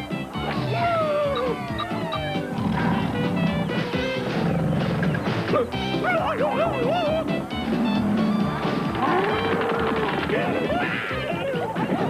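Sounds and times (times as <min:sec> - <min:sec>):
cartoon score music: 0:00.0 - 0:12.0.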